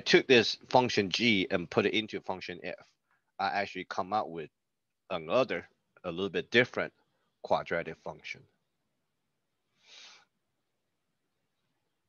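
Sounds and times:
person breathing softly: 0:09.6 - 0:10.4.

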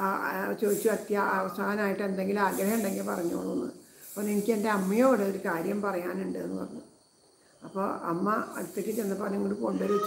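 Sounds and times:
woman speaking: 0:00.0 - 0:06.8, 0:07.6 - 0:10.0.

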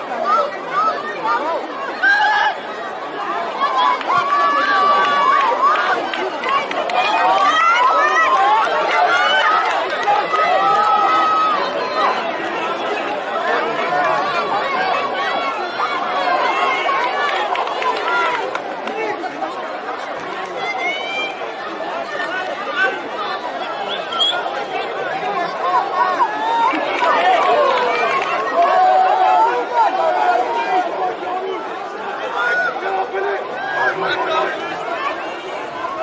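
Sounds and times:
spectators shouting and talking: 0:00.0 - 0:36.0.

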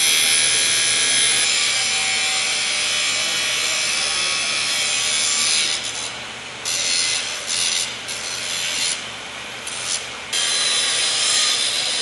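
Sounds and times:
angle grinder cutting metal: 0:00.0 - 0:09.0, 0:09.7 - 0:12.0.

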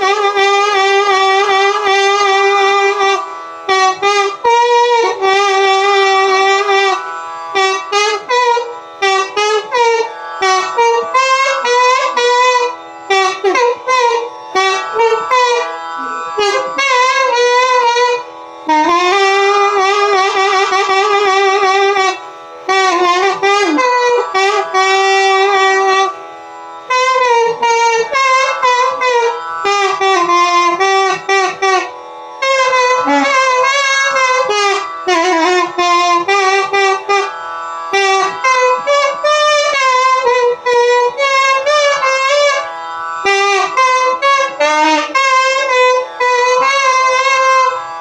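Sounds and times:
flute playing: 0:00.0 - 0:48.0.

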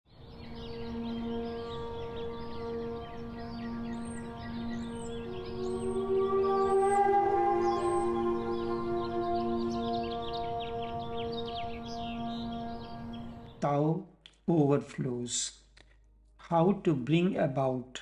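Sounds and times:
ambient drone music: 0:00.1 - 0:13.9
high chirps: 0:00.4 - 0:13.7.

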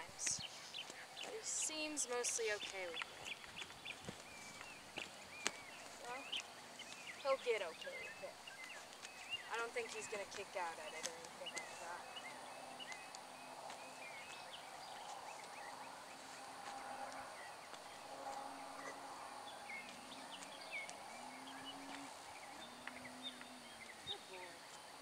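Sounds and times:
faint low hum: 0:00.0 - 0:25.0
small birds chirping: 0:00.0 - 0:25.0.

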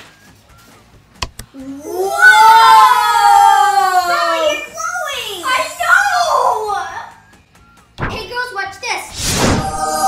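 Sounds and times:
girl's drawn-out vocal cry: 0:09.6 - 0:10.0.

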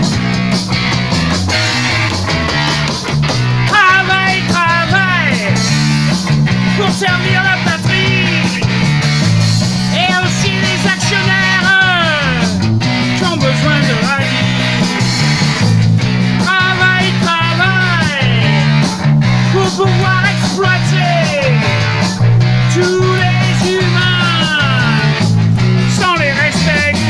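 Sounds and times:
electric bass line: 0:00.0 - 0:27.0
rock band playing: 0:00.0 - 0:27.0.

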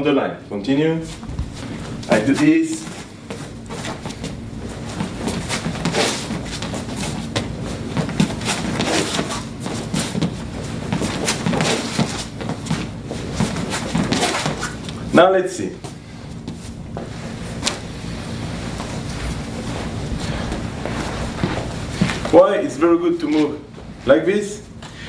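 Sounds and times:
low room hum: 0:00.0 - 0:25.0
footsteps and shuffling feet: 0:00.8 - 0:25.0.

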